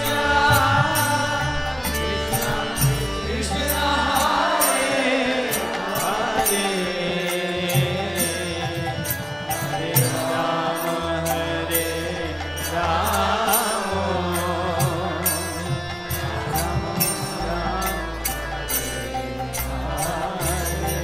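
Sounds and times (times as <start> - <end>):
group singing a chant: 0.0 - 21.0.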